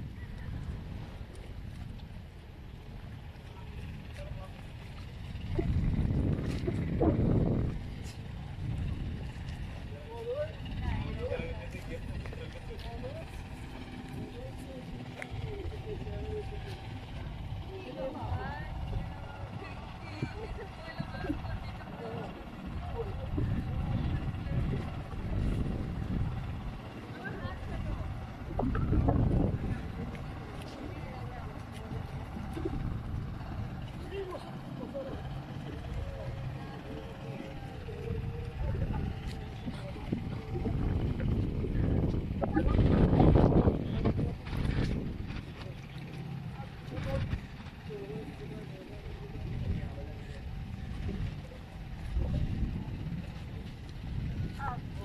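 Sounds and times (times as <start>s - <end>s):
boat low rumble: 0.0s - 55.0s
faint voices: 0.0s - 55.0s
people chattering: 9.8s - 55.0s.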